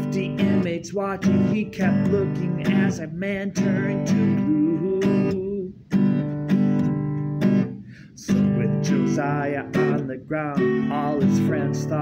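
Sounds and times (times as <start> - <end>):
acoustic guitar strumming: 0.0 - 12.0.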